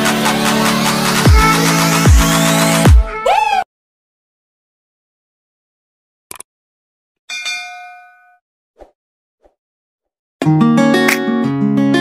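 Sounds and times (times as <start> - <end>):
bright bell chime: 7.3 - 8.4.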